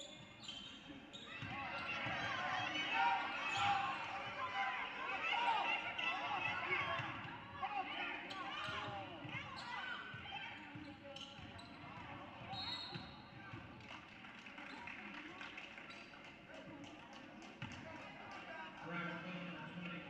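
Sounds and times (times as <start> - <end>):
referee's whistle: 12.5 - 13.2.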